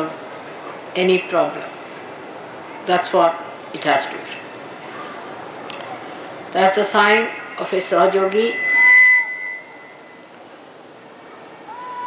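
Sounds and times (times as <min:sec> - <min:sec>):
microphone feedback ringing: 0:07.0 - 0:10.4.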